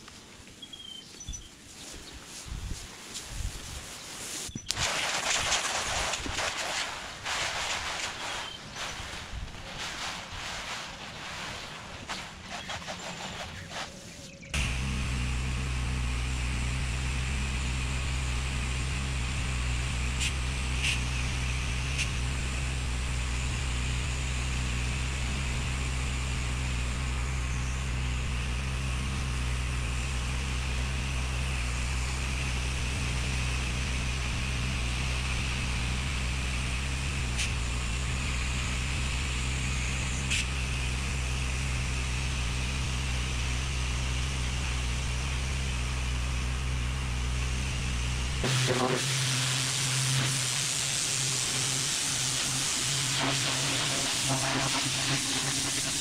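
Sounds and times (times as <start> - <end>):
water spraying from hose wand: 2.3 - 27.1, 28.3 - 56.0
pressure washer humming: 4.2 - 56.0.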